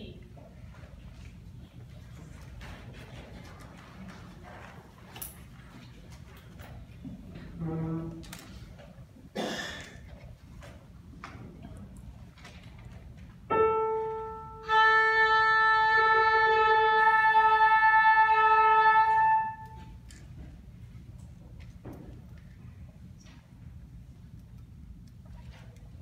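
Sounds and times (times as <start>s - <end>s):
oboe and flute holding a note: 13.6s - 20.0s.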